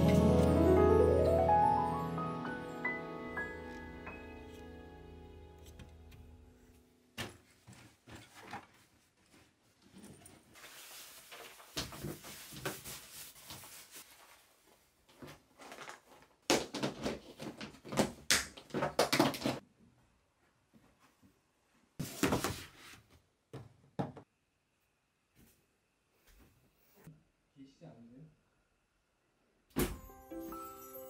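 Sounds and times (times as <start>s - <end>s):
soft background music: 0.0s - 7.0s, 30.0s - 31.0s
fabric rustling: 7.3s - 16.2s.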